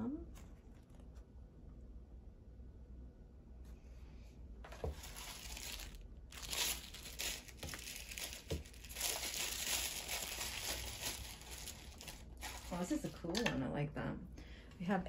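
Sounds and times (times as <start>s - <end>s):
plastic packaging crinkling: 4.7s - 13.2s.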